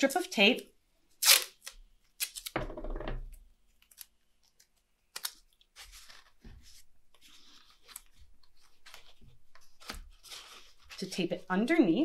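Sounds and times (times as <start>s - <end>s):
masking tape peeling off roll: 1.2s - 2.5s.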